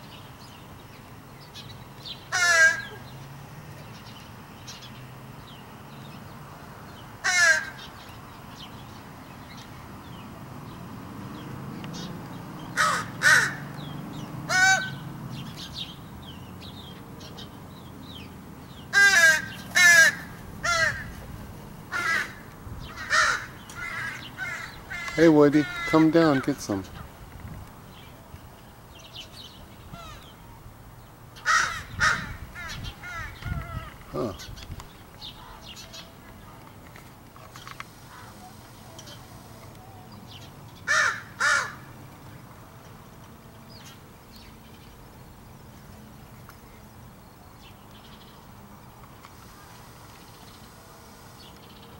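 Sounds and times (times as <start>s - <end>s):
crow cawing: 2.3s - 3.0s, 7.2s - 7.9s, 12.8s - 13.7s, 14.5s - 15.0s, 18.9s - 21.2s, 21.9s - 26.6s, 30.0s - 30.2s, 31.4s - 34.3s, 40.9s - 41.9s.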